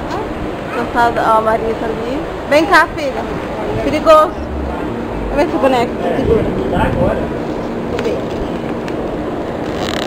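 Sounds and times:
street traffic noise: 0.0 - 10.0
vehicle engine humming: 0.0 - 10.0.

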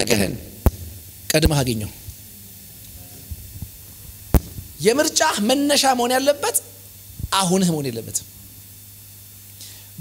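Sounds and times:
low electrical hum: 0.0 - 10.0
man speaking: 1.3 - 2.0, 4.8 - 8.3
soft low thumps: 3.3 - 4.8.

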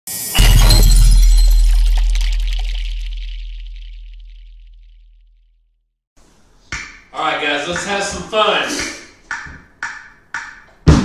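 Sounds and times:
bright crash: 0.1 - 5.3
deep low boom: 0.4 - 5.4.

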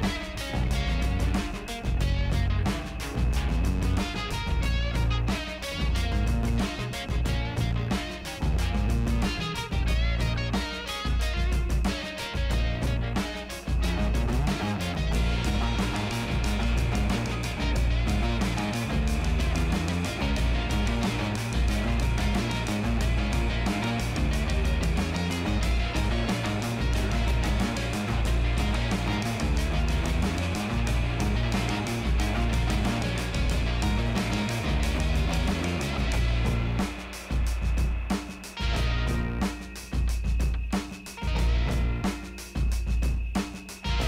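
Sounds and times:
music with steady beat: 0.0 - 44.0.

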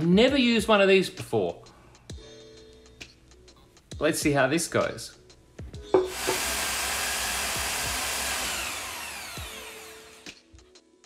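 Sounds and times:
power drill cutting wood: 6.0 - 10.4.

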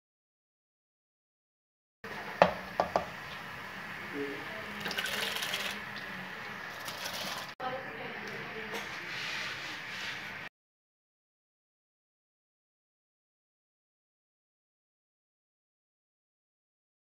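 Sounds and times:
water boiling in a pot: 2.1 - 7.6
rice pouring into water splash: 4.8 - 5.9, 6.6 - 7.6.

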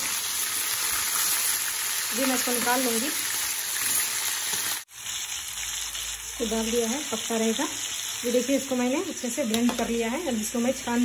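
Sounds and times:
chicken sizzling in hot oil: 0.0 - 11.0.

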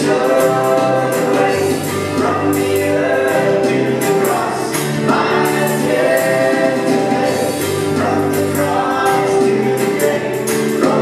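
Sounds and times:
praise band playing: 0.0 - 11.0.

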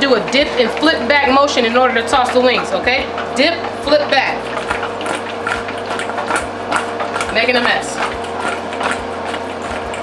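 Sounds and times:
wings knocking in metal bowl: 0.0 - 10.0.

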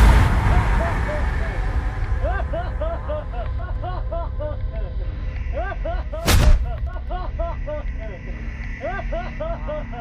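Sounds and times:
gunshot: 6.2 - 6.8.

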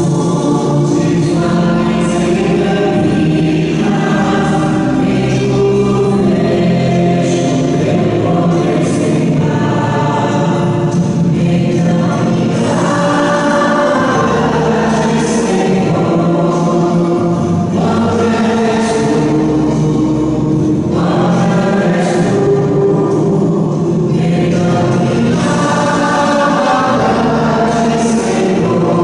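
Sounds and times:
group singing a hymn: 0.0 - 29.0.

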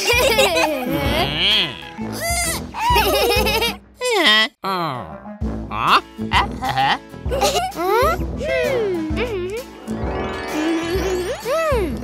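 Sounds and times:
light background music: 0.0 - 4.1, 5.1 - 12.0.

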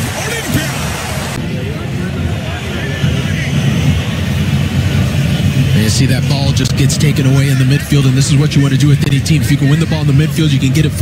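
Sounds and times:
faint voices: 0.0 - 11.0
stadium crowd rumble: 0.0 - 11.0.

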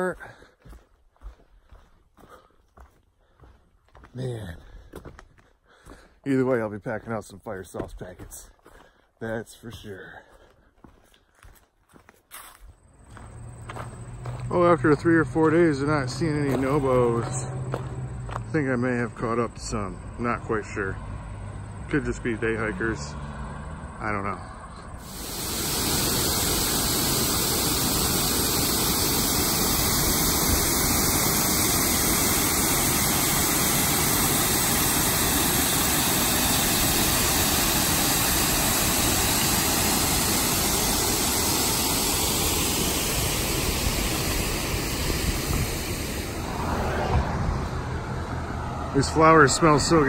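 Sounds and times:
water rushing over spillway: 25.0 - 47.0.

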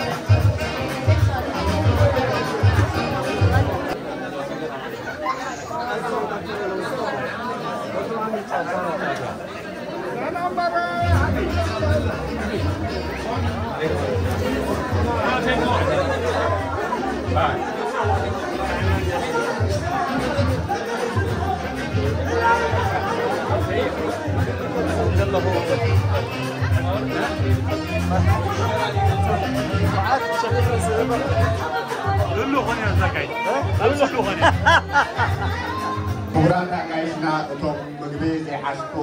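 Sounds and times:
dance music: 0.0 - 4.0, 10.8 - 36.5
party guests chatting: 0.0 - 39.0.

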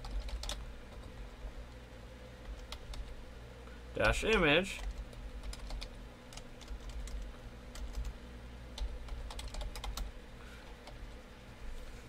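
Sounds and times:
typing on computer keyboard: 0.0 - 1.2, 4.3 - 8.2, 8.8 - 10.1
low steady hum: 0.0 - 12.0.

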